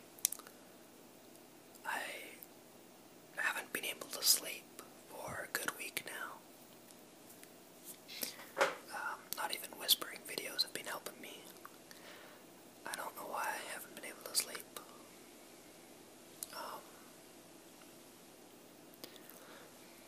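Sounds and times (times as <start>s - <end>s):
person whispering: 1.8s - 2.4s, 3.4s - 6.4s, 8.1s - 11.6s, 12.9s - 15.0s, 16.4s - 17.0s.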